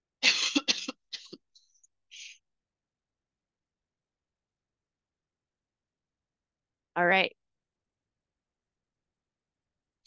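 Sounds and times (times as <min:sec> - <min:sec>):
breathy throat clearing: 0:00.2 - 0:01.4
person coughing: 0:00.2 - 0:01.4.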